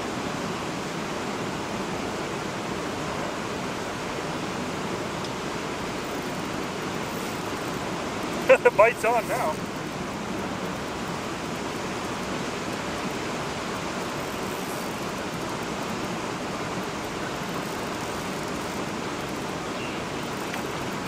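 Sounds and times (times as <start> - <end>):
water rushing from dam: 0.0 - 21.0.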